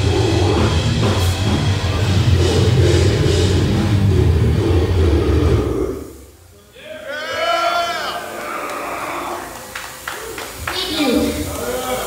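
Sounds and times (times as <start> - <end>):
metal band playing live: 0.0 - 5.9.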